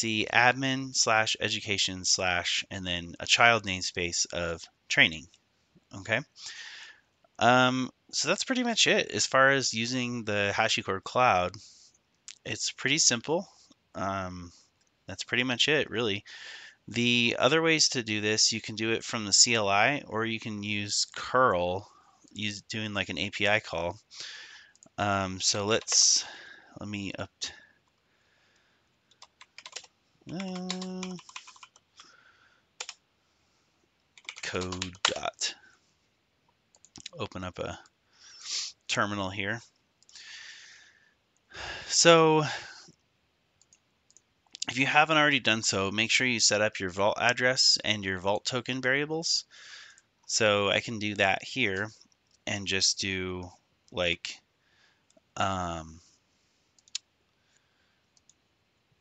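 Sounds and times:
typing on computer keyboard: 0:29.1 - 0:32.1, 0:32.8 - 0:33.0, 0:34.2 - 0:35.2
person humming: 0:30.3 - 0:31.3.

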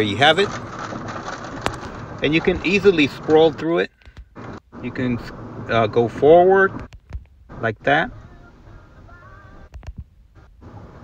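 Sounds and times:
in-car road noise: 0:00.0 - 0:11.0.

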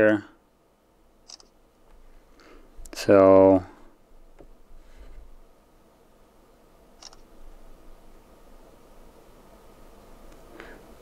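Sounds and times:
camera shutter click: 0:01.3 - 0:01.5, 0:07.0 - 0:07.3.

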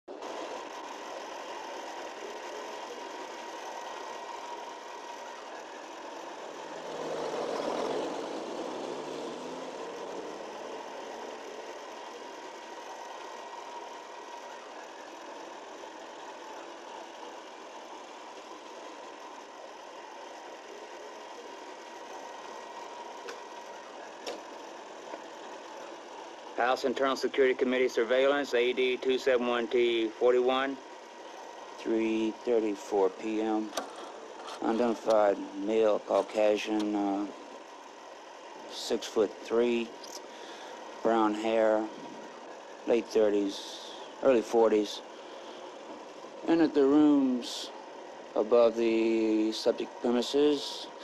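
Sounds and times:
city street traffic: 0:00.0 - 0:51.0
vehicle passing: 0:06.6 - 0:11.8.

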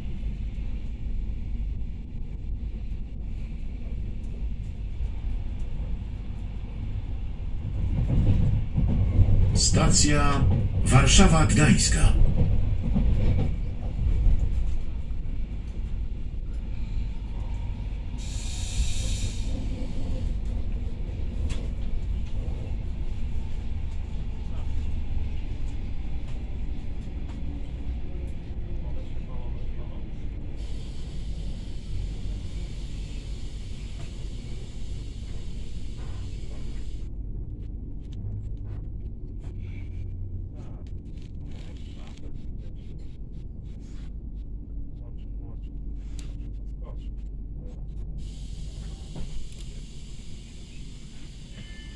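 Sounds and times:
train running rumble: 0:00.0 - 0:51.9.

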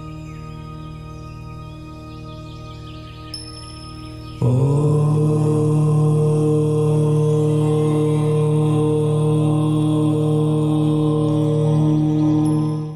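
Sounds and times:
person chanting om: 0:04.3 - 0:12.9.

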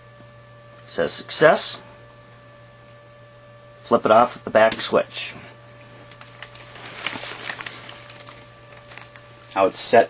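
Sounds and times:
electrical hum: 0:00.0 - 0:10.0.

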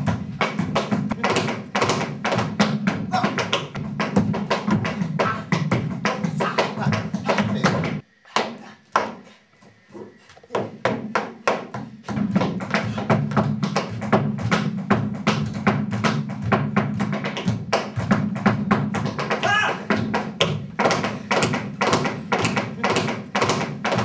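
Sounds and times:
tap shoes tapping on stage floor: 0:00.0 - 0:09.2, 0:10.5 - 0:24.0.

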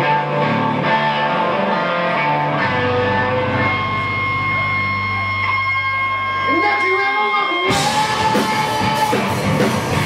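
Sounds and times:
rock band guitar drone: 0:00.0 - 0:10.0.

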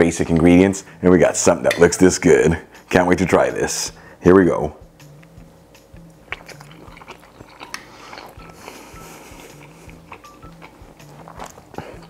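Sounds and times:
quiet background music: 0:00.0 - 0:12.0
person chewing food: 0:06.0 - 0:12.0.

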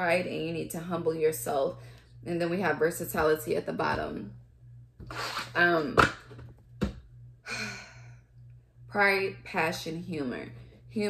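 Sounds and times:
faint low hum: 0:00.0 - 0:11.0
woman sighing: 0:07.4 - 0:08.2.

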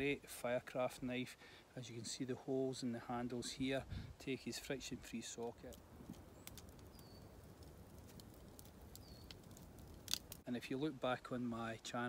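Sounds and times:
campfire crackling and popping: 0:03.9 - 0:10.5
bird chirping: 0:06.2 - 0:09.6.

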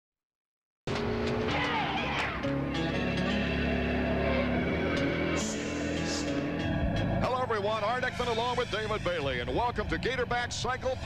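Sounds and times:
held synth notes with pitch glides: 0:00.9 - 0:11.0
race car engine: 0:00.9 - 0:11.0
tyres squealing: 0:01.3 - 0:07.2.

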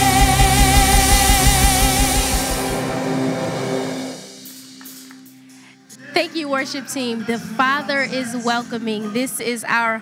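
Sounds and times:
live band holding a chord: 0:00.0 - 0:05.7.

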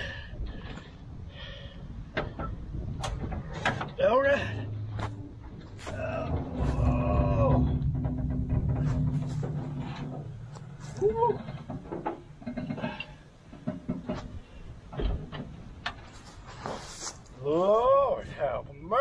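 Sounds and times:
low metal groan: 0:02.1 - 0:15.8
knocks and clicks: 0:05.0 - 0:10.8.

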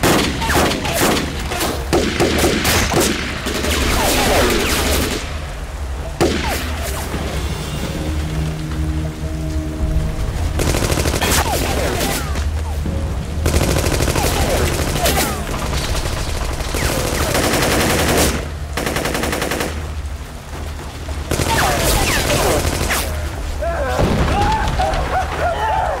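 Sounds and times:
machine gun firing bursts: 0:13.4 - 0:20.0, 0:21.3 - 0:23.2.

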